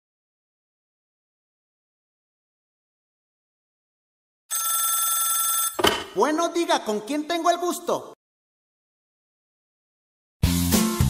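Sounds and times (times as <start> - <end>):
telephone ringing: 4.5 - 6.1.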